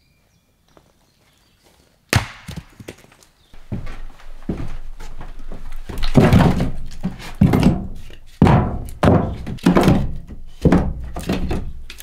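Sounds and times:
heavy blows on timber: 5.9s - 11.6s.

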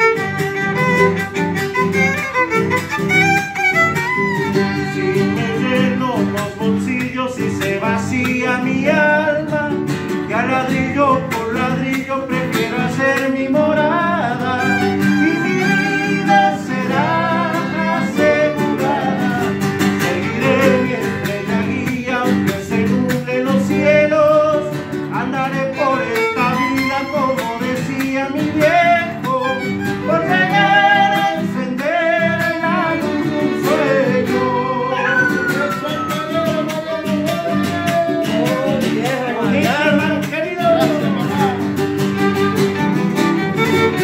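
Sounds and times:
violin: 0.0s - 6.2s, 14.2s - 21.6s, 25.1s - 31.5s, 32.2s - 39.2s, 40.8s - 44.0s
acoustic guitars: 0.0s - 44.0s
man singing: 4.5s - 41.8s.

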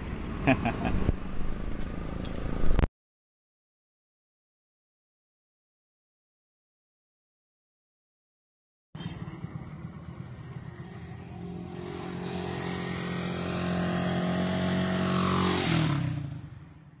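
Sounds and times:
motorcycle passing by: 0.0s - 2.9s, 9.0s - 17.0s.

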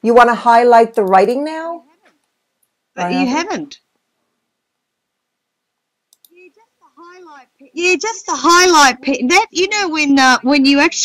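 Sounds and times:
computer mouse clicks: 6.1s - 6.4s.

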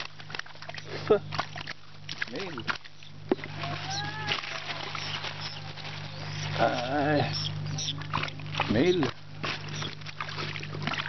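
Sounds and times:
watery clicks: 0.0s - 5.5s
steady low hum: 0.0s - 11.0s
short wavering call: 3.0s - 8.0s
plastic bags rustling: 3.4s - 7.2s.

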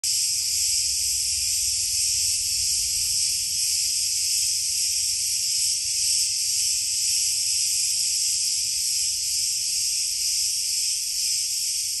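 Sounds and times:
cicadas buzzing: 0.0s - 12.0s.

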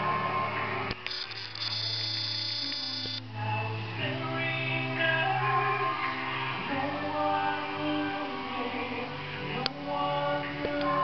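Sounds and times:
high-pitched whine: 0.9s - 4.6s
electrical hum: 1.0s - 4.2s.

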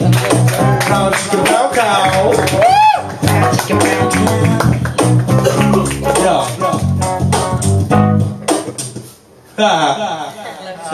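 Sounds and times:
live band with guitar and bass: 0.0s - 9.6s.

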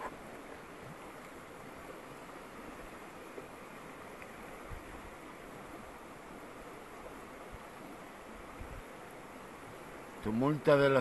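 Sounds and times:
river rushing: 0.0s - 11.0s.

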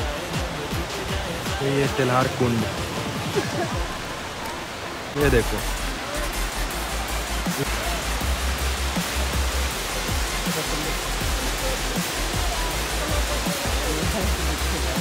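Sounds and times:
background music with bass beat: 0.0s - 15.0s
waterfall rushing: 0.0s - 15.0s.

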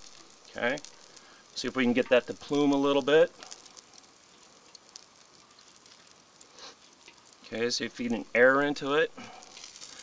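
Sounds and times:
fire crackling and hissing: 0.0s - 10.0s.

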